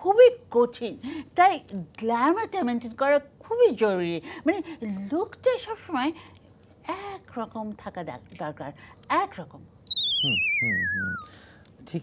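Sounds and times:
warbling electronic tone gliding down: 9.9 - 11.4.

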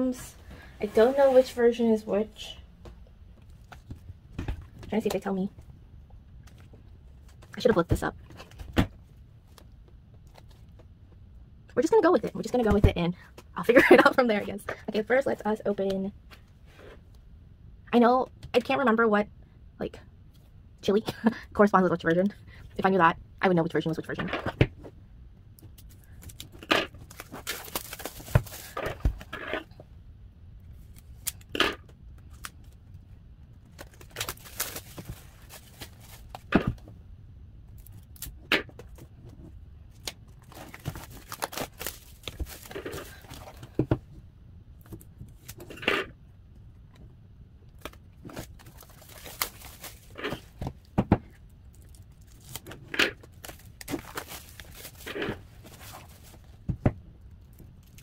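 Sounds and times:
plastic shrink wrap tearing: 33.8 - 36.5, 40.0 - 43.3, 48.3 - 50.4, 51.7 - 56.4.

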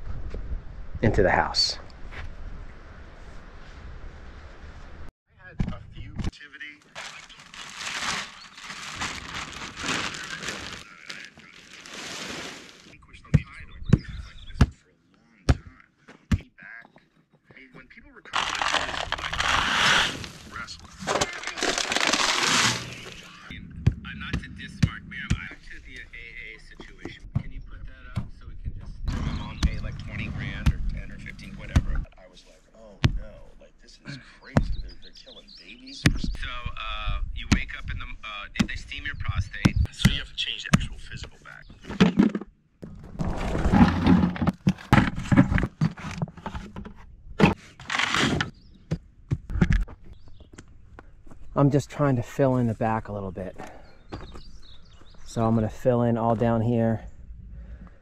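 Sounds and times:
gravel pouring from bucket: 7.0 - 12.9, 18.4 - 23.3.

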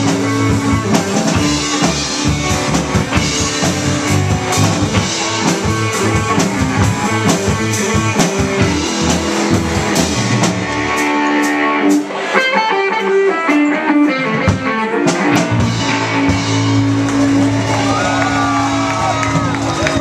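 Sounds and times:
electric guitar notes: 0.0 - 20.0
rock band playing: 0.0 - 20.0.

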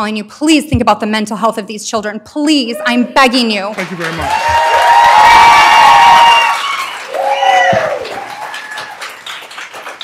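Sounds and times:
audience applauding: 3.7 - 10.0
shouted cheers: 4.0 - 9.3.

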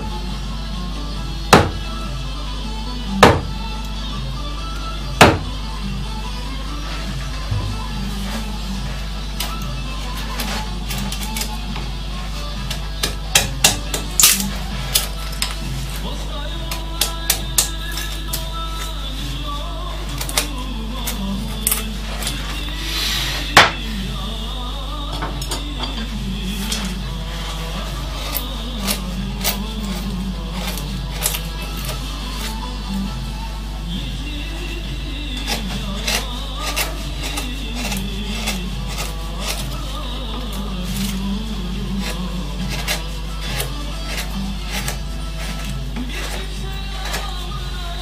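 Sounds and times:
background music: 0.0 - 48.0.

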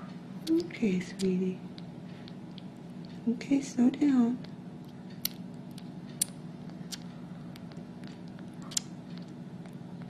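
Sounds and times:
steady low hum: 0.0 - 10.0
kitten suckling wet clicks: 0.4 - 3.2, 4.4 - 10.0.

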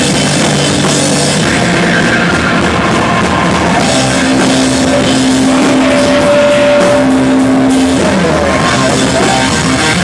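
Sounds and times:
bass guitar: 0.0 - 10.0
drum kit: 0.0 - 10.0
electric guitar: 0.0 - 10.0.

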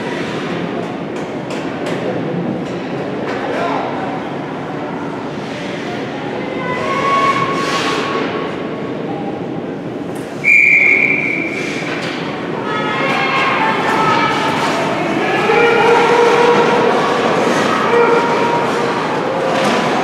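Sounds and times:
referee's whistle blast: 10.4 - 11.7
spectators shouting: 12.6 - 20.0.

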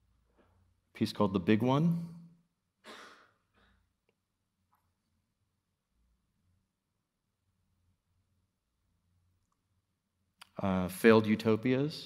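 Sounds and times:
person speaking: 0.9 - 2.2.

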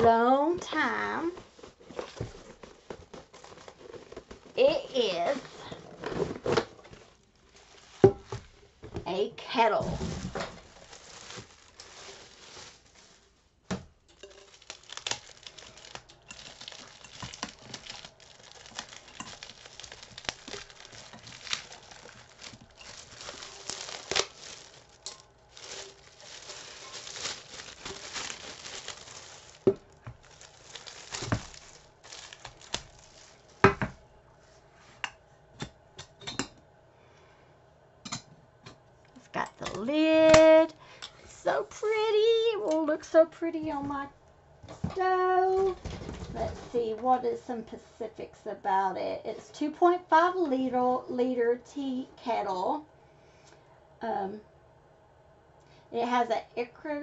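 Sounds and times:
plastic bag crinkling: 0.0 - 34.0.

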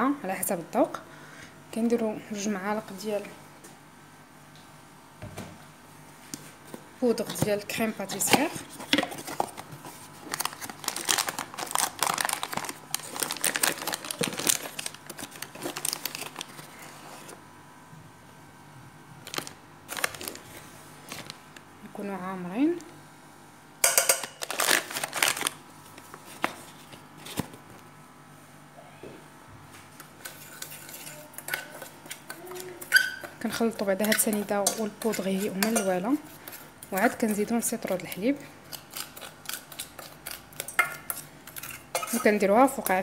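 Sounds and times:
packet crinkling and rustling: 8.8 - 17.3, 19.2 - 21.5, 24.2 - 27.7.

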